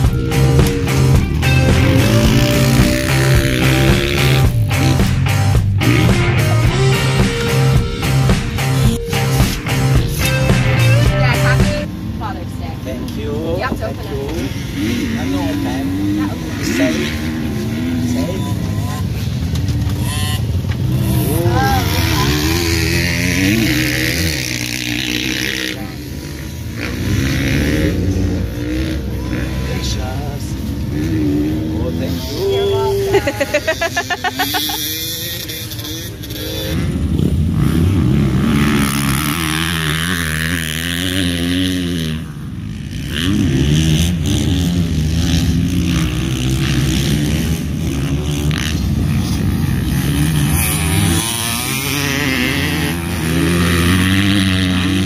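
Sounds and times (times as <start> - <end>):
dirt bike engines revving: 0.0 - 55.0
people talking: 10.2 - 19.2, 21.0 - 24.4, 29.1 - 34.8.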